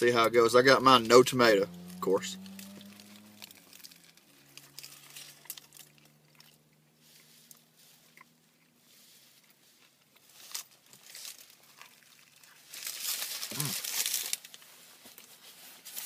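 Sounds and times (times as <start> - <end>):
crunchy bites: 1.9 - 6.7, 10.4 - 14.4
person chewing a sandwich: 2.8 - 12.7, 13.4 - 14.0.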